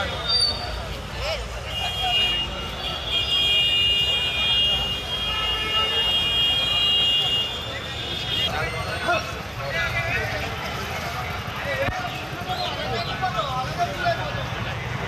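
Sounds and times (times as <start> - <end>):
traffic rumble: 0.0 - 15.0
voices: 0.0 - 15.0.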